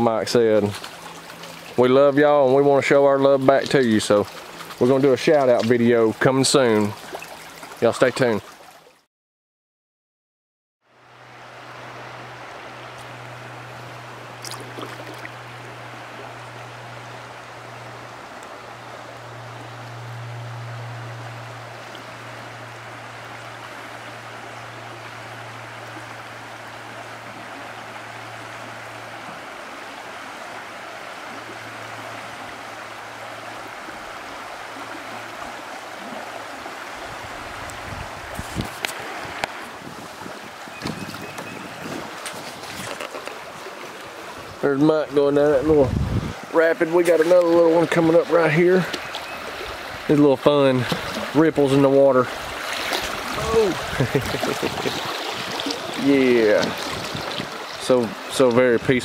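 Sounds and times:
creek water running: 0.0s - 9.1s, 10.9s - 59.0s
low hum: 10.9s - 29.4s.

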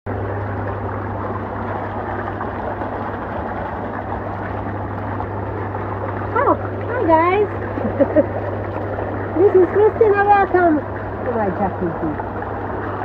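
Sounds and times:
hot tub jets bubbling: 0.1s - 13.0s
pump motor humming: 0.1s - 13.0s.

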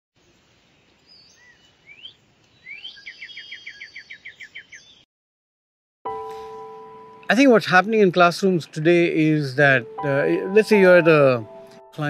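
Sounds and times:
faint steady hiss: 0.2s - 2.7s
bird calling: 1.1s - 5.0s.

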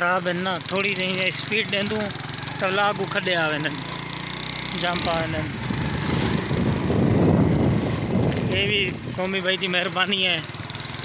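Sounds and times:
road rumble: 0.0s - 11.0s
vehicle passing: 3.8s - 8.9s
wind buffeting microphone: 5.5s - 9.3s.

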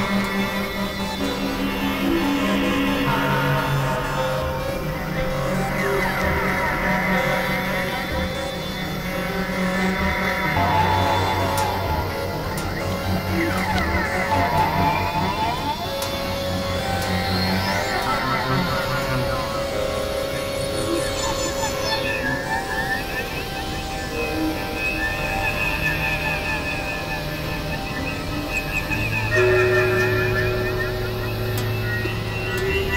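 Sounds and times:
synthesizer drone music: 0.0s - 32.9s.

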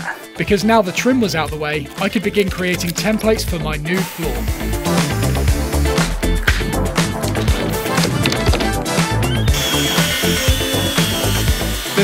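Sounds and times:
background music with steady beat: 0.0s - 12.0s
track saw cutting plywood: 7.6s - 12.0s.

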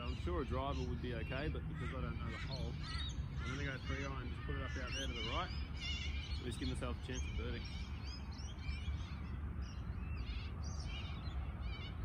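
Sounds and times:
birds making harsh calls: 0.0s - 12.0s.

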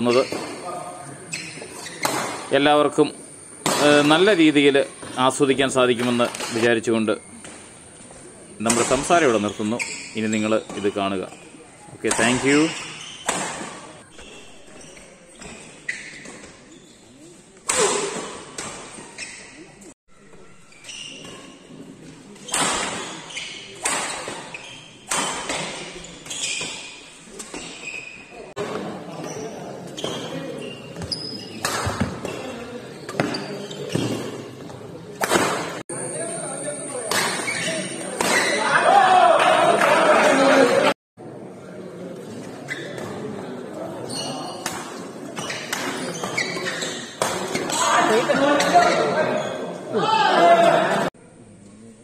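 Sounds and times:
murmur of spectators: 28.2s - 52.0s.

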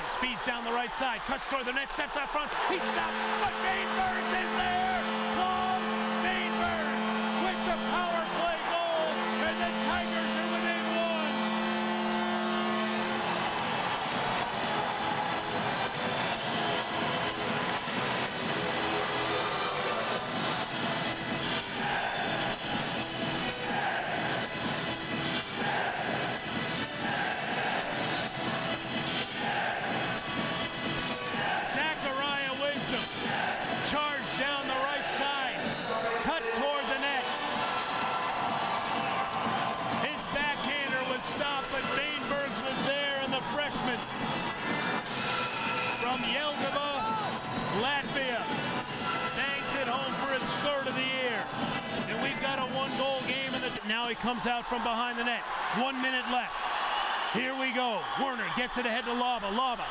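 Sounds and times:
crowd cheering: 0.0s - 59.9s
music over arena speakers: 0.2s - 56.6s
arena goal horn: 2.6s - 21.7s, 30.7s - 39.2s, 40.0s - 44.0s, 44.8s - 51.4s.

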